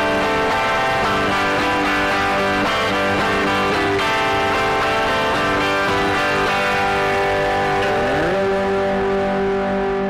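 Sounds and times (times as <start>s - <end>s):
guitar sustained chords: 0.0s - 10.0s.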